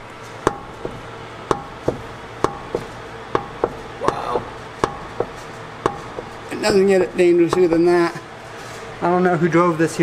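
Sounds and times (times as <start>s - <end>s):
metallic knocks with ringing tail: 0.4s - 6.9s, 7.5s - 7.9s
ball joint clunking: 0.4s - 8.0s.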